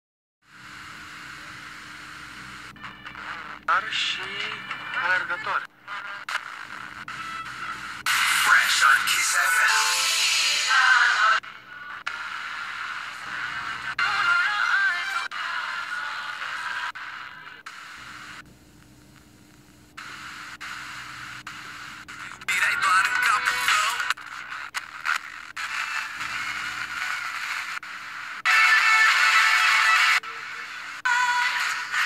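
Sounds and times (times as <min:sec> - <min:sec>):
faint weak radio signal: 0:00.5 - 0:32.0
radio static hiss: 0:00.5 - 0:32.0.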